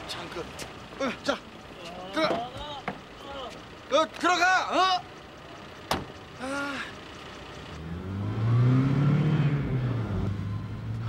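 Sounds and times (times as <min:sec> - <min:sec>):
car engine revving: 0:07.3 - 0:11.0.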